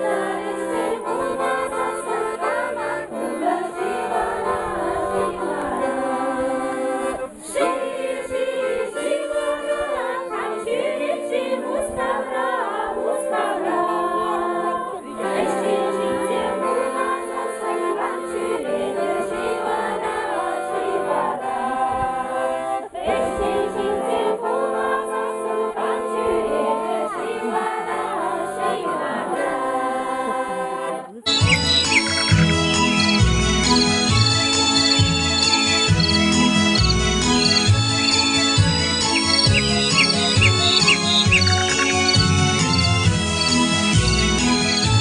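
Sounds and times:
accordion: 0.0s - 45.0s
women's choir singing: 0.0s - 45.0s.

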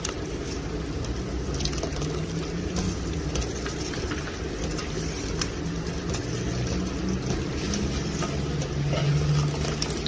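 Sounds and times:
thick liquid sloshing in pot: 0.0s - 10.0s.

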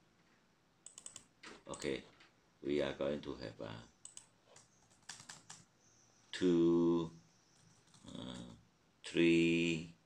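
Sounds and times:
keyboard keystrokes: 0.8s - 1.9s.

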